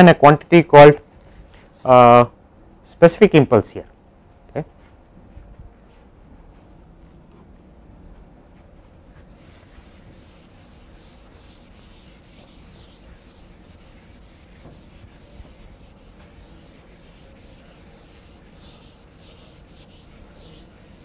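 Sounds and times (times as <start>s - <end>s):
eraser rubbing on chalkboard: 9.2s - 21.0s.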